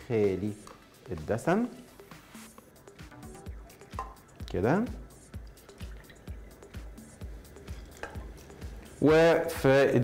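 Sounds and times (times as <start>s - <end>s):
faint background music: 0.0s - 10.0s
dripping: 3.0s - 9.0s
milk being poured: 3.8s - 8.9s.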